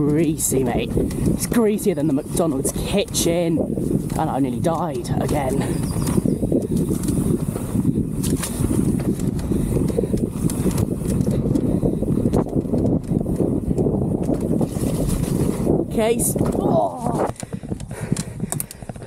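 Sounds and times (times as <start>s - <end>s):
tyres rumbling on dirt: 0.0s - 18.0s
bike knocks and rattles: 0.0s - 19.0s
wind rush on microphone: 0.0s - 19.0s.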